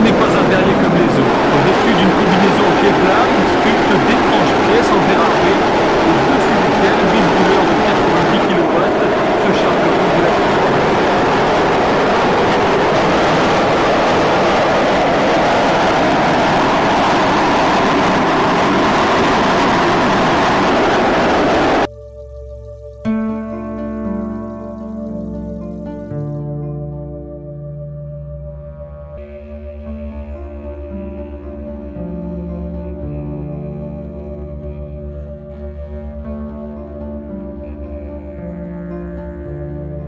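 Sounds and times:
gas burners rushing: 0.0s - 21.9s.

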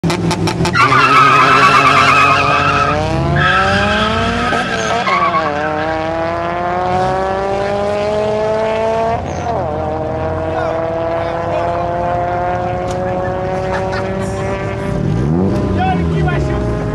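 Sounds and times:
car engines revving: 0.0s - 16.9s
tyres squealing: 0.8s - 6.0s.

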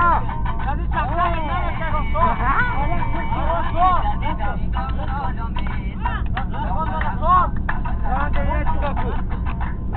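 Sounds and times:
engine and road rumble: 0.0s - 9.9s.

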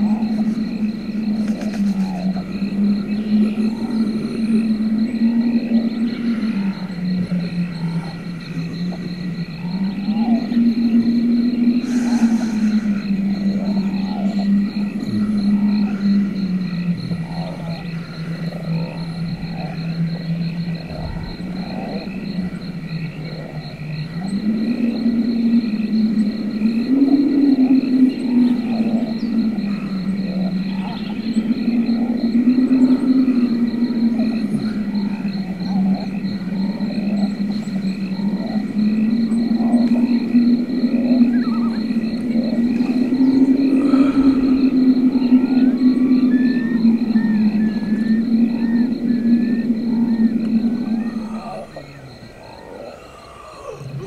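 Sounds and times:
dark ambient drone music: 0.0s - 54.0s.

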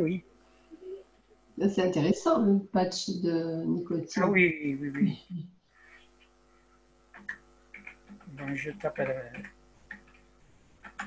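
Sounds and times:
person speaking: 0.0s - 0.2s, 1.6s - 5.4s, 7.2s - 9.5s
computer keys clicking: 7.1s - 11.0s.

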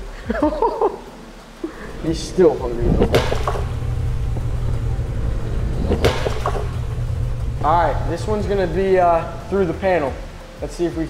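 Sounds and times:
steady low rumble: 1.7s - 10.6s.

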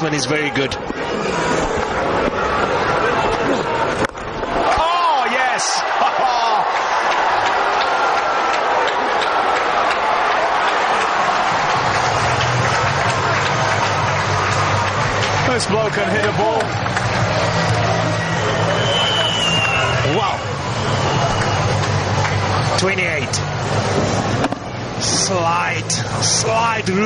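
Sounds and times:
stadium crowd shouting and cheering: 0.0s - 27.0s.

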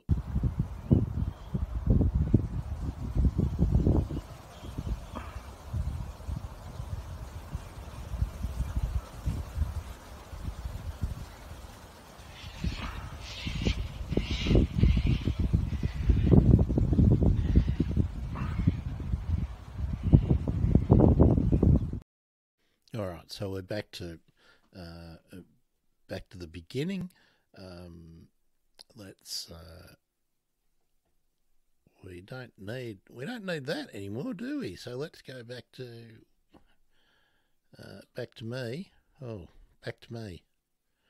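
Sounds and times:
wind buffeting microphone: 0.1s - 22.0s
birds calling: 3.4s - 21.9s.

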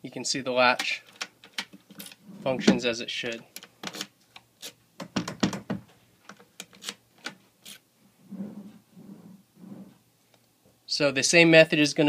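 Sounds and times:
drawer sliding open: 1.9s - 2.9s, 7.7s - 10.0s.

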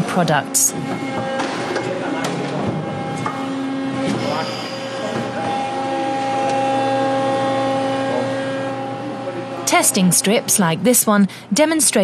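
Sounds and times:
injection moulding machine hum: 0.0s - 11.6s.

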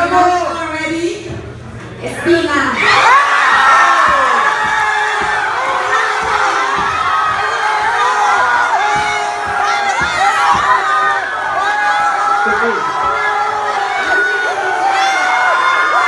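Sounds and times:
crowd cheering and screaming: 2.8s - 16.0s.

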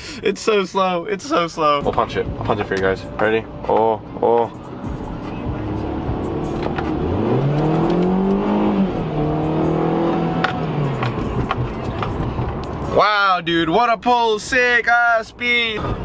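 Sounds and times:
car engine accelerating: 1.7s - 13.0s.

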